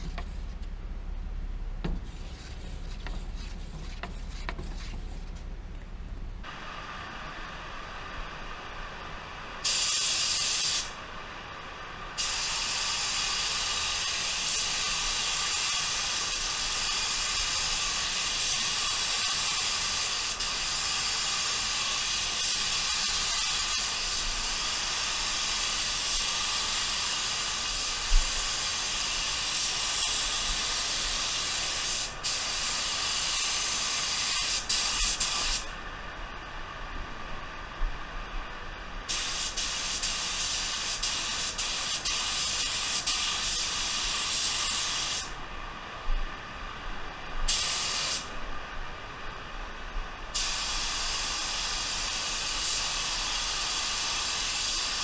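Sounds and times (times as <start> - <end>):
spray gun hissing: 9.6 - 11.0, 12.2 - 35.7, 39.1 - 45.4, 47.5 - 48.3, 50.4 - 55.0.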